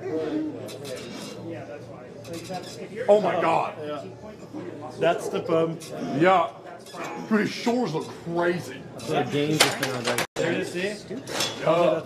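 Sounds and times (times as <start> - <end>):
quiet male voices talking: 0.0 - 12.0.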